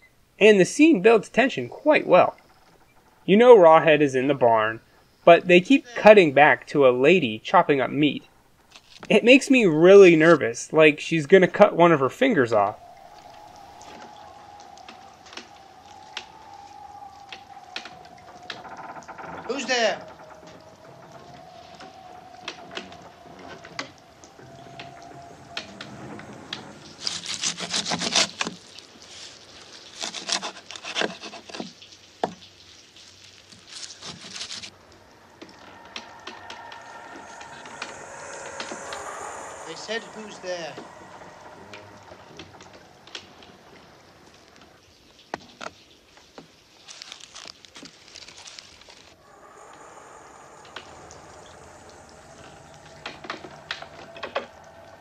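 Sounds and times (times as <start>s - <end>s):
wavering held tone: 11.6s - 27.0s, 34.7s - 44.4s, 49.2s - 55.0s
loud creak: 11.9s - 28.8s, 33.6s - 44.5s, 47.0s - 55.0s.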